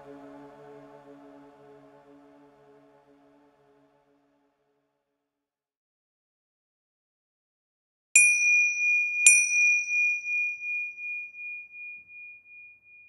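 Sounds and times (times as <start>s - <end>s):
meditation chime ringing: 8.2s - 13.0s.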